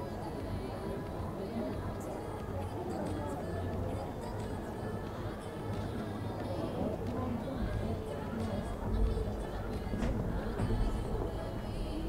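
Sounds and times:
murmur of spectator voices: 0.0s - 12.0s.

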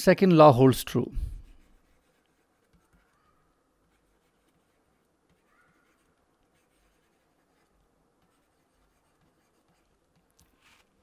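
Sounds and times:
stylus scratching on pen tablet: 1.3s - 11.0s.

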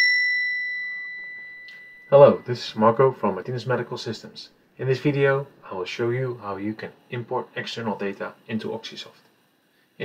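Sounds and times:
bright high chime ringing: 0.0s - 3.1s.

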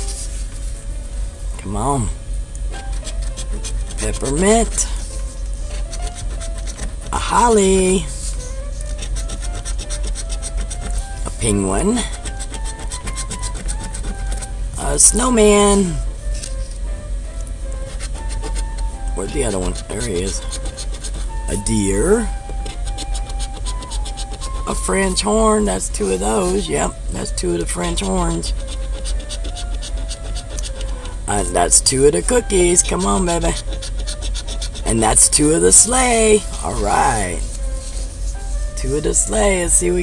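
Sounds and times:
coin scraping lottery ticket: 2.8s - 16.7s, 17.9s - 40.0s.

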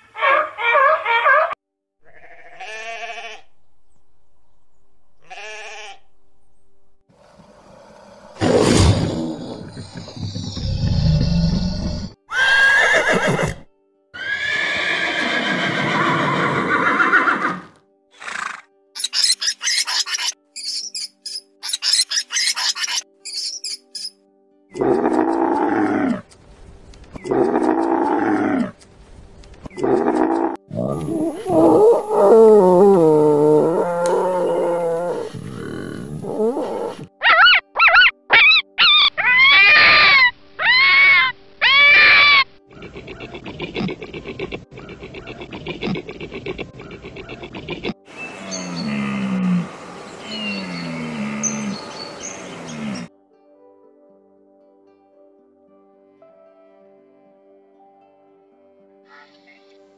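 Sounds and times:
fox yips: 0.1s - 1.6s, 36.5s - 42.5s
animal calls: 29.8s - 53.1s.

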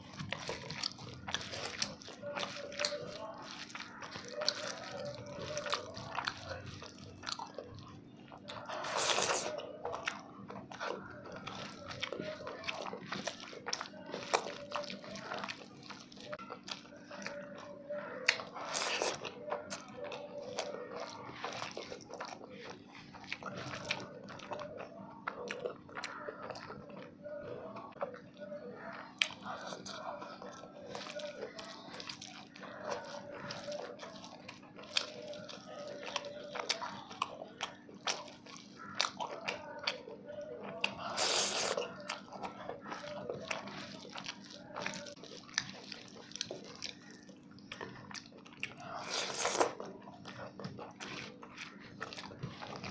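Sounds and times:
person chewing food: 0.0s - 52.9s.

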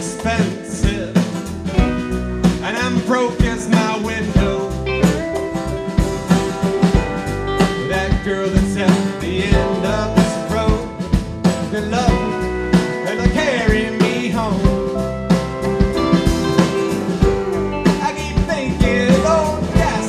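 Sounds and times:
bass guitar: 0.0s - 20.0s
drum kit beat: 0.0s - 20.0s
electric guitar: 0.0s - 20.0s
strummed acoustic guitar: 0.0s - 20.0s.

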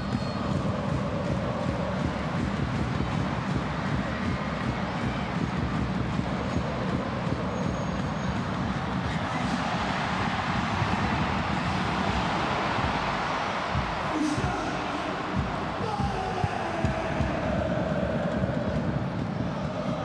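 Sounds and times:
stadium crowd roaring: 0.0s - 20.0s.

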